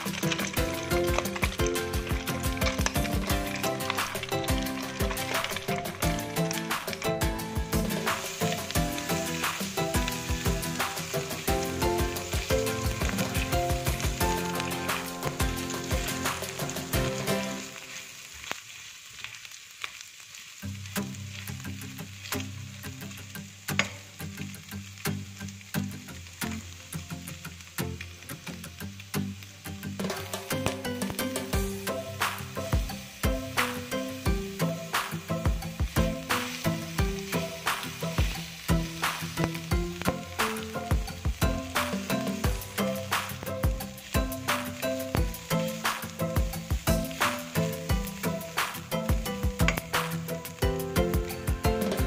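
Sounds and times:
background music: 0.0s - 18.1s, 21.1s - 52.0s
carrots sizzling in hot oil: 0.0s - 52.0s.

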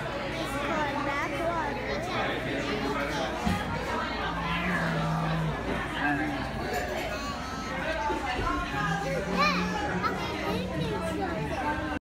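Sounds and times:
restaurant chatter: 0.0s - 12.0s.

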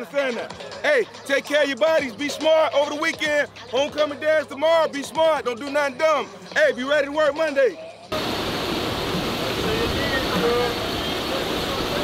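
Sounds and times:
buses idling: 8.1s - 12.0s.

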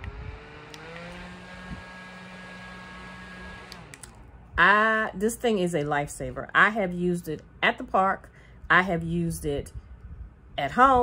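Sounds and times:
handheld fan motor whine: 0.0s - 4.3s.

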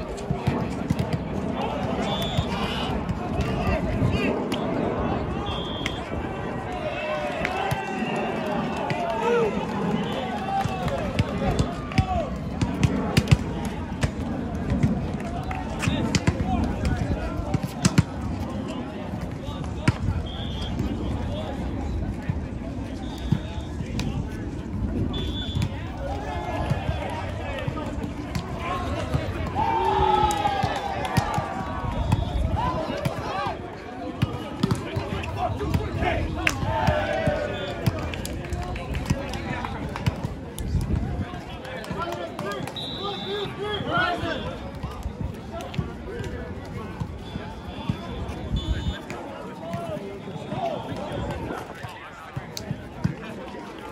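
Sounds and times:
people shouting and talking: 0.0s - 53.9s.

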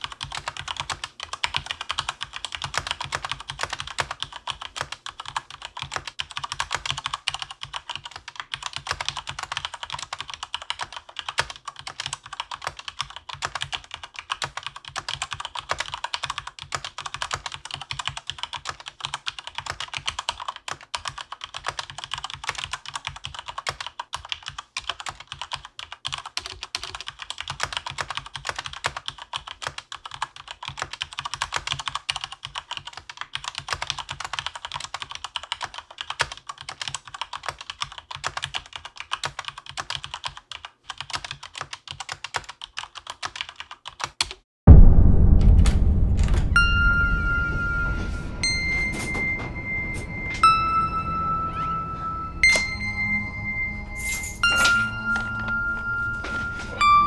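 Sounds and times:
keyboard typing: 0.0s - 44.4s, 48.6s - 57.0s.

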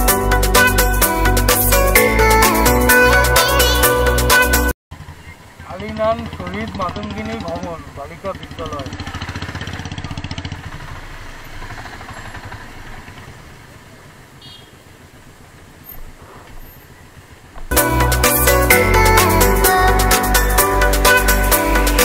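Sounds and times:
motorcycle engine running: 4.9s - 18.2s
people talking: 5.6s - 9.2s.

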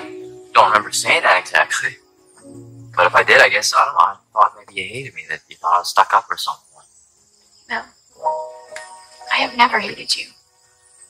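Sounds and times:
crickets chirring: 0.0s - 11.0s
soft background music: 0.0s - 11.0s.

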